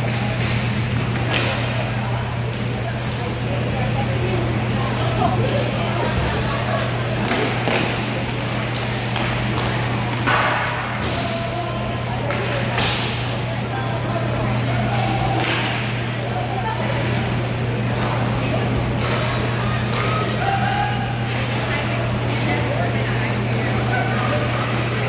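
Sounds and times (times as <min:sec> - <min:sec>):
hockey sticks knocking puck: 0:00.1 - 0:01.7, 0:07.2 - 0:11.3, 0:12.2 - 0:13.2, 0:15.3 - 0:16.3, 0:18.9 - 0:20.2.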